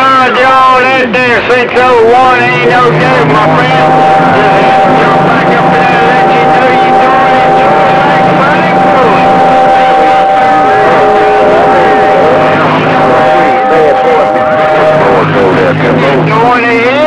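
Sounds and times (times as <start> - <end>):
garbled radio voices: 0.0 - 17.0
radio static: 0.0 - 17.0
radio whistles: 2.3 - 17.0.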